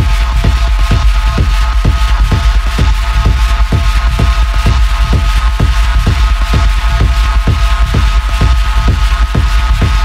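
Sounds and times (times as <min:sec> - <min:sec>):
heavy sustained bass: 0:00.0 - 0:10.0
kick drum thuds: 0:00.0 - 0:10.0.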